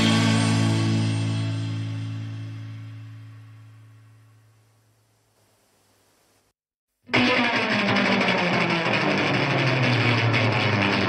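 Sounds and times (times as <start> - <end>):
electric guitar chord ringing: 0.0 - 4.6, 7.1 - 11.0.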